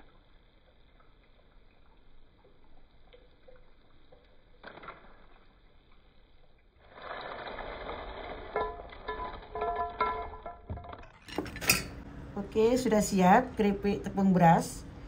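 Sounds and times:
crackers clattering onto plate: 0:08.5 - 0:12.0.

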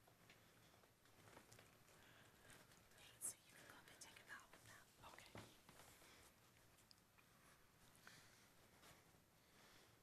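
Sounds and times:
faint whispering voices: 0:02.3 - 0:06.2.

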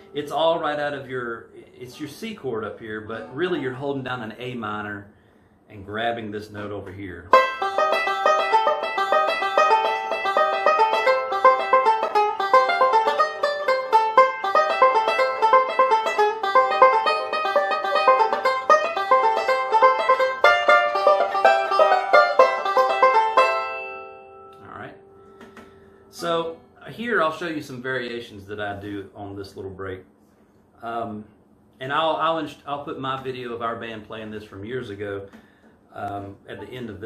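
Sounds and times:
fingerpicked banjo: 0:07.3 - 0:24.6.

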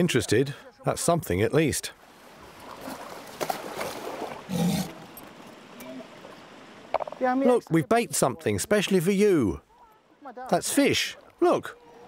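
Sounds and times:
walrus snorting: 0:04.5 - 0:05.1.

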